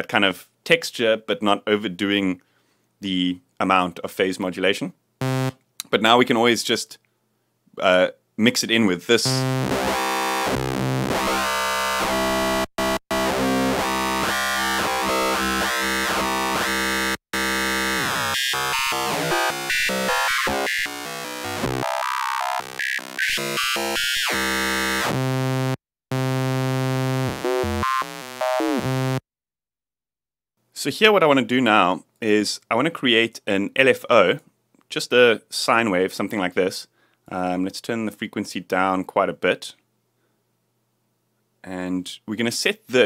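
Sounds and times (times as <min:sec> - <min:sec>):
gritty synthesizer lead: 0:05.2 - 0:05.5, 0:09.2 - 0:29.2.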